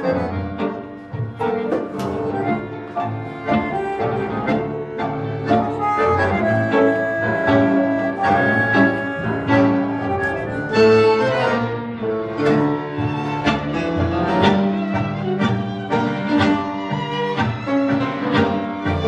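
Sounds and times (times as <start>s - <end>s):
tango played by small orchestra: 0.0s - 19.0s.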